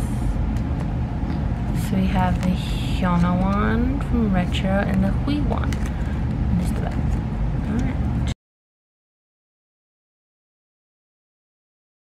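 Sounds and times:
low background rumble: 0.0 - 8.4.

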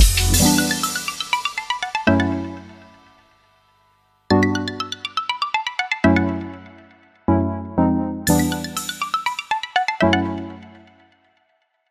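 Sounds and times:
background music: 0.0 - 11.3.

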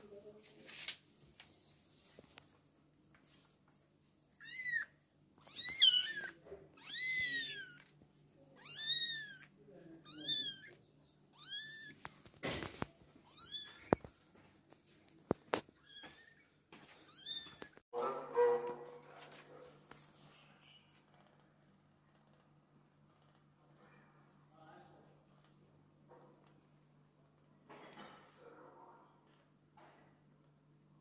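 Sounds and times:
kittens mewing: 4.4 - 7.9.

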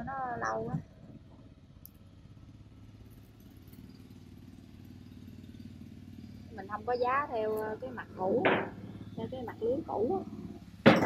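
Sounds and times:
faint engine running: 0.0 - 11.0.

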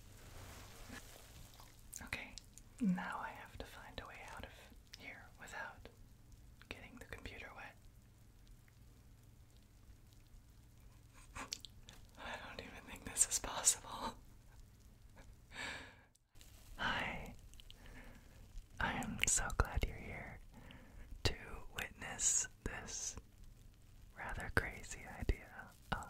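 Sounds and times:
hands moving in bath foam: 0.1 - 1.9
close whispering: 2.0 - 5.9, 6.6 - 7.8, 11.1 - 14.2, 16.8 - 18.2, 18.8 - 23.2, 24.2 - 26.0.

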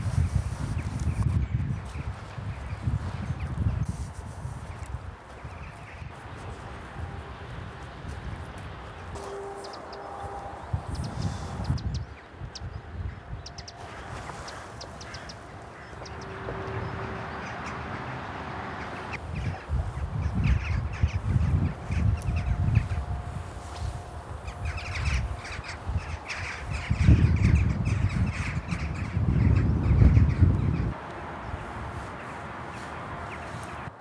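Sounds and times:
wind rumbling on microphone: 0.0 - 34.0
jackdaws calling: 8.7 - 33.9.

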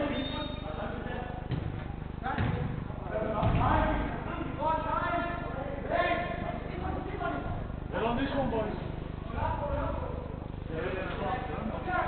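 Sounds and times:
steady low hum: 0.0 - 12.0
ball kick thuds: 1.5 - 2.8, 3.4 - 4.0.

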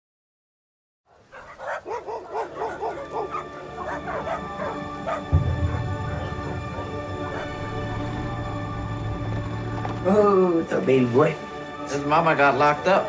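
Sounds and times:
dog barking: 1.1 - 7.6
held music tones: 2.2 - 12.4
deep low music drone: 2.5 - 13.0.

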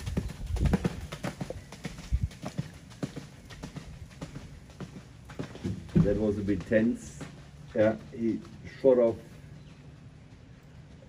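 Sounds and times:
horse hoofbeats on sand: 0.0 - 11.0.

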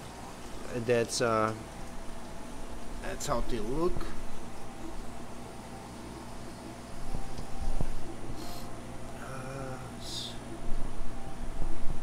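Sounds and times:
aquarium pumps humming: 0.0 - 12.0.

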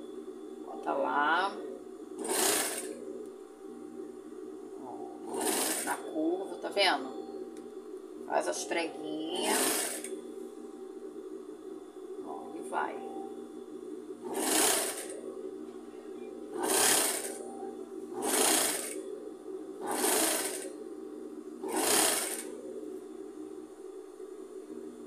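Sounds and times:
steady low hum: 0.0 - 25.0
sewing machine stitching: 2.2 - 2.9, 5.3 - 6.0, 9.4 - 10.1, 14.3 - 15.1, 16.6 - 17.4, 18.2 - 19.0, 19.9 - 20.7, 21.7 - 22.4.

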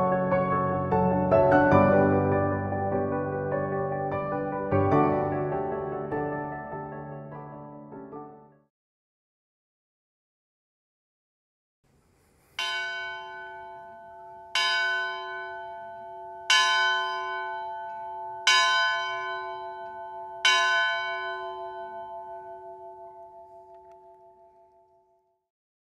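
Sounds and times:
church bell tolling: 12.6 - 25.2.

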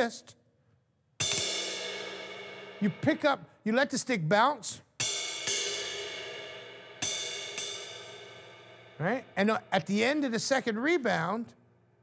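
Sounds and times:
stick rebounding off cymbal: 1.2 - 3.2, 5.0 - 10.2
ride cymbal struck with drumstick: 1.2 - 3.3, 5.0 - 10.5.

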